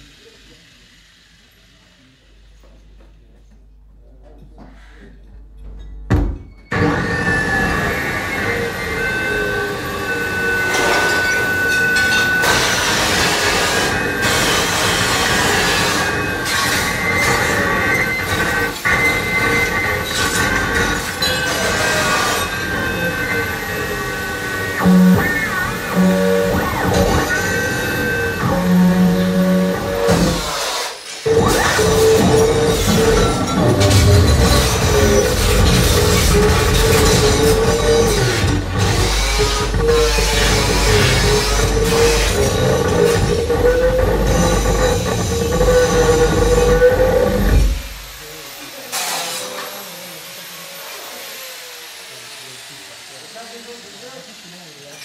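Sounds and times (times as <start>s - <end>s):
metallic screeching and squealing: 6.5s - 50.6s.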